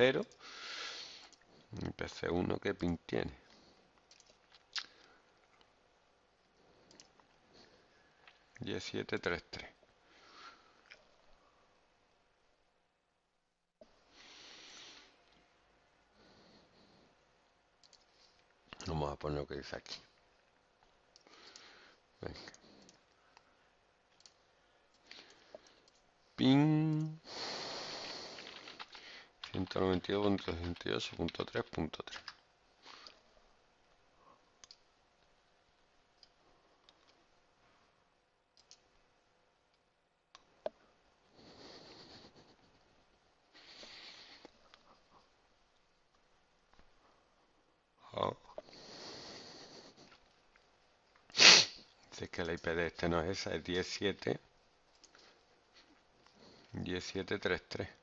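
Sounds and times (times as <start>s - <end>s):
person breathing: 0.4s - 1.7s, 10.0s - 10.8s, 14.1s - 15.2s, 16.1s - 17.2s, 21.2s - 23.5s, 27.2s - 29.5s, 43.5s - 45.2s, 48.6s - 50.2s
faint computer mouse clicks: 34.6s - 34.8s, 38.6s - 38.8s
loud sharp sniff: 51.3s - 51.9s.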